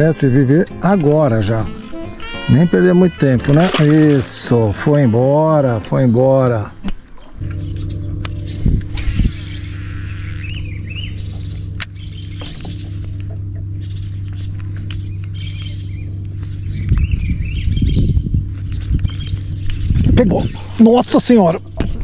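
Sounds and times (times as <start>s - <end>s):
birds chirping: 0.0s - 22.0s
electric motor humming: 7.4s - 20.7s.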